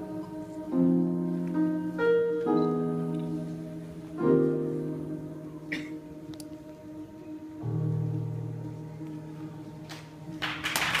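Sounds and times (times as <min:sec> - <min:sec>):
audience applause: 0:09.9 - 0:11.0.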